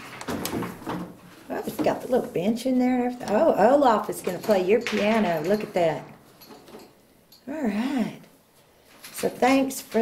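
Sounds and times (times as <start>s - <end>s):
person speaking: 1.4s - 6.2s, 7.4s - 8.4s.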